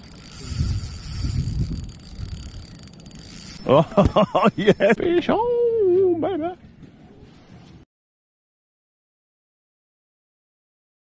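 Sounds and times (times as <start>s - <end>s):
mechanical rattling and rumbling: 0.0s - 3.6s.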